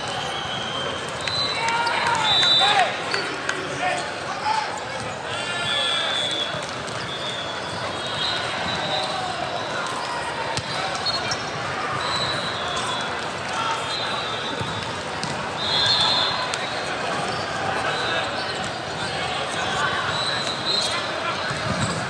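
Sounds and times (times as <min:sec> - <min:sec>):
players calling: 0:00.0 - 0:22.0
volleyballs struck and bouncing: 0:14.5 - 0:15.6, 0:21.4 - 0:22.0.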